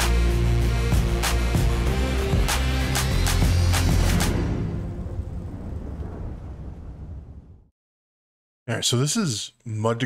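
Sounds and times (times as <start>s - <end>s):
intro music: 0.0s - 5.4s
low rumbling sound effect: 4.0s - 7.7s.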